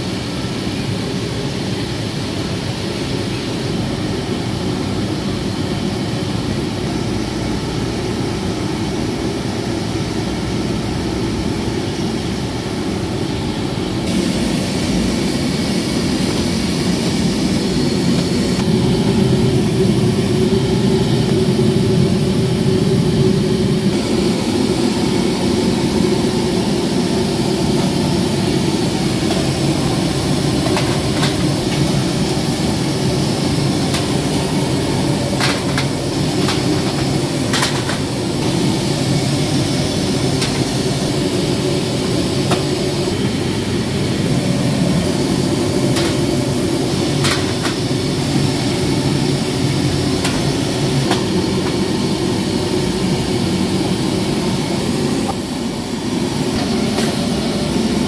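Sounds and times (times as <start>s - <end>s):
kitchen equipment roar: 0.0s - 58.0s.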